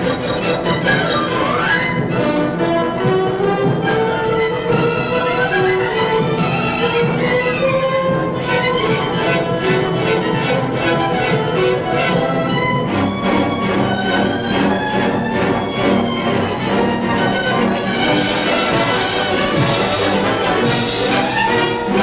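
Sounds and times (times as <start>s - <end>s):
orchestral music: 0.0s - 22.0s.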